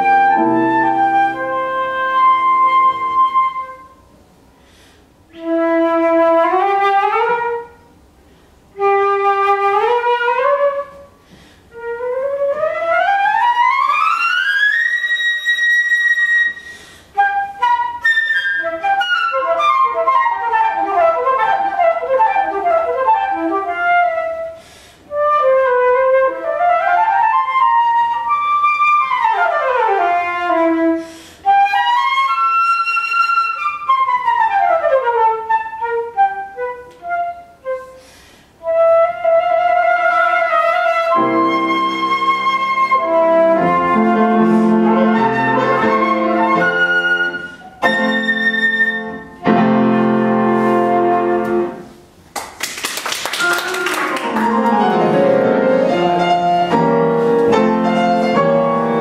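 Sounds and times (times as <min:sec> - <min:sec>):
flute playing scales: 0:00.0 - 0:04.1, 0:05.3 - 0:08.1, 0:08.7 - 0:52.2, 0:53.2 - 0:59.0
piano: 0:00.0 - 0:59.0.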